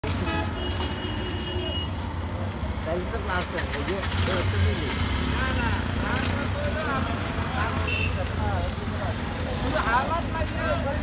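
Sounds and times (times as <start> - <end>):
auto-rickshaw engines rumbling: 0.0 - 11.0.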